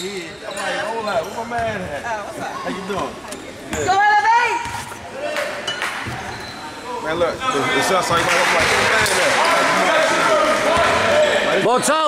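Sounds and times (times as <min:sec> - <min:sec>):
voices echoing in gymnasium: 0:00.0 - 0:12.0.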